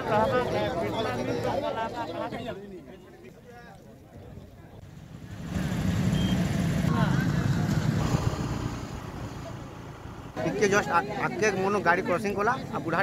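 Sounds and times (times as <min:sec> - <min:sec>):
vehicle passing on highway: 0:05.0 - 0:10.7.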